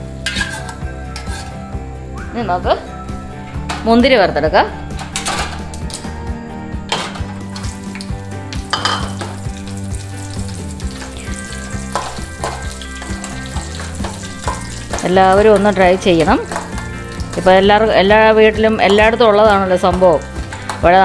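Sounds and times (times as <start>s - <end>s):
metal spoon scraping pan: 0.2s - 1.6s, 5.0s - 5.6s, 11.1s - 17.5s
raisins sizzling in hot fat: 7.5s - 18.1s.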